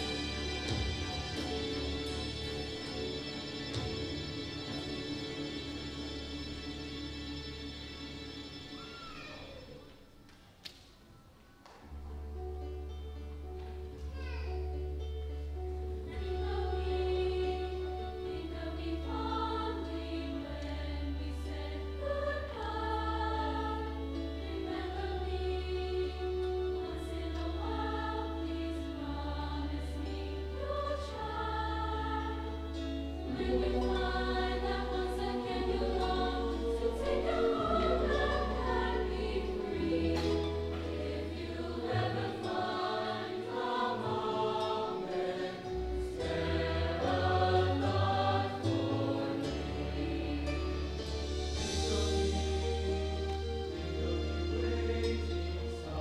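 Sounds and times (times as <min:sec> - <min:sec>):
choir singing in parts: 0:00.0 - 0:08.9, 0:15.7 - 0:56.0.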